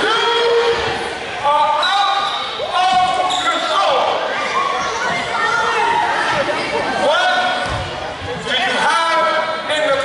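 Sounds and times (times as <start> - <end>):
voices calling out and shouting: 0.0 - 10.0.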